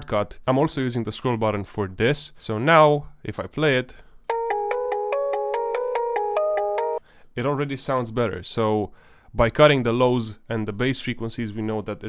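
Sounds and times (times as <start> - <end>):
bright bell melody: 4.3 - 7.0.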